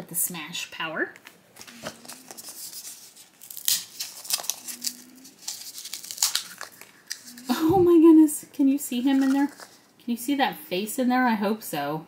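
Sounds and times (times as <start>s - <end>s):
wrapper being torn open: 1.6s - 7.5s, 9.1s - 9.9s.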